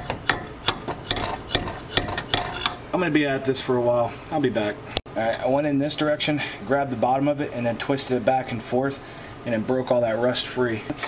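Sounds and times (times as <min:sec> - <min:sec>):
hammer striking metal: 0:00.0 - 0:02.8.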